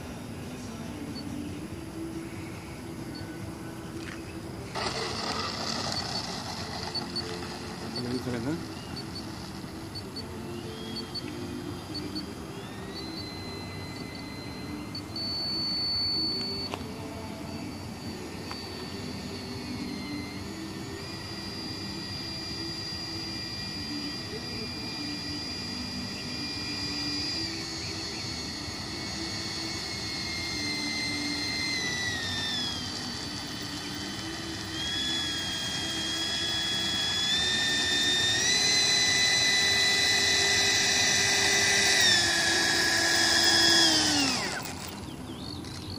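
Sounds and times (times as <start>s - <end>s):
model jet ducted fan whining: 0.0s - 45.9s.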